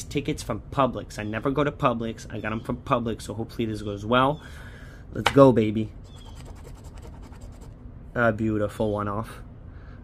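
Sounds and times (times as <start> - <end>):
coin scratching a ticket: 6.0 - 7.8.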